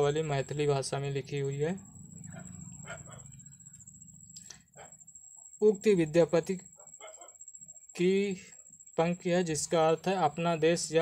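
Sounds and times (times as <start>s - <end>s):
low steady hum: 0.0s - 11.0s
faint animal calls: 1.2s - 5.6s, 6.6s - 9.0s.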